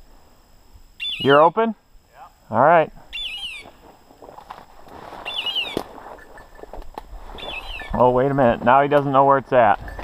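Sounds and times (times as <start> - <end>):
high descending bird call: 1.0 - 1.5, 3.1 - 3.8, 5.2 - 5.8, 7.4 - 8.0
rustle of pushing through brush: 3.6 - 8.0.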